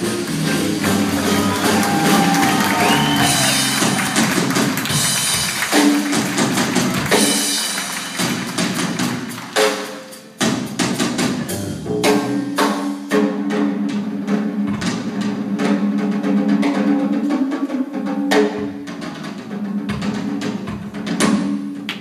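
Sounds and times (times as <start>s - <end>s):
upright bass: 0.0s - 9.0s, 11.0s - 12.6s
drum kit: 0.0s - 22.0s.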